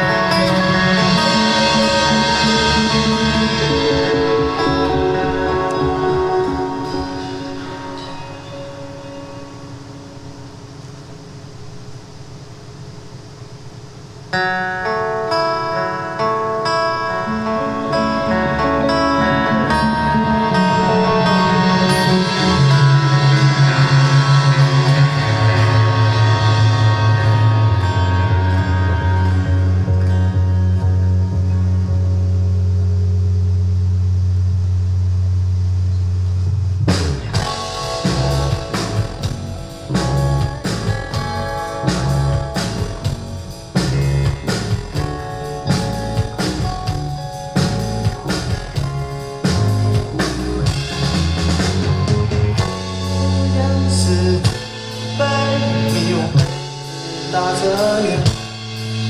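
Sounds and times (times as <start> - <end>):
full band with drums: 0.0 - 9.6, 17.5 - 31.1, 36.8 - 59.0
guitar chord ringing: 0.0 - 12.0, 14.3 - 34.4, 37.1 - 59.0
loud low drone: 0.0 - 12.2, 17.4 - 59.0
steady low rumble: 17.4 - 59.0.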